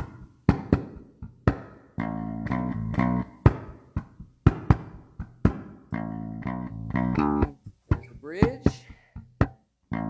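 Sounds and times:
electric bass guitar playing: 0.0s - 10.0s.

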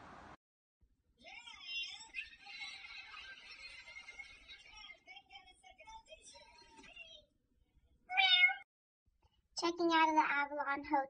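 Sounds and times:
cat meowing: 8.1s - 8.7s.

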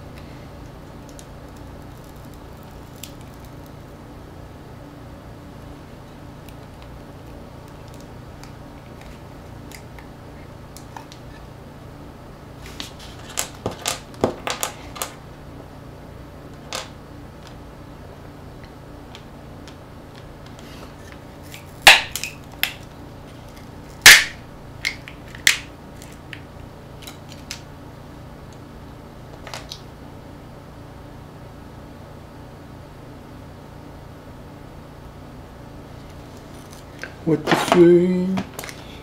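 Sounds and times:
steady low hum: 0.0s - 39.0s.

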